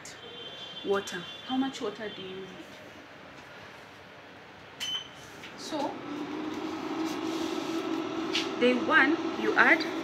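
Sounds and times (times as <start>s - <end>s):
air noise: 5.2s - 10.0s
incubator electric hum: 5.6s - 10.0s.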